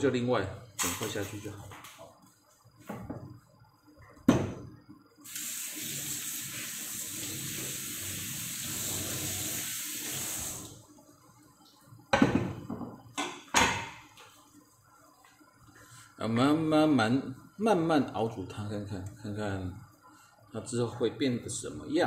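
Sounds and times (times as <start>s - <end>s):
kitchen tap water running: 5.2s - 10.8s.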